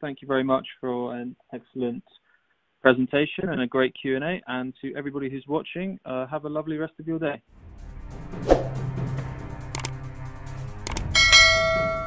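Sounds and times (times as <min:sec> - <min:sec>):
short click: 0:09.7 - 0:10.0, 0:10.9 - 0:11.1
bright bell ding: 0:11.2 - 0:12.0.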